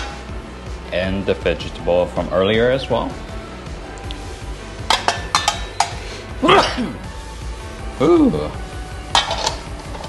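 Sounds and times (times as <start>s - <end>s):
background music: 0.0s - 10.0s
metal spatula clinking: 4.8s - 6.0s, 9.1s - 10.0s.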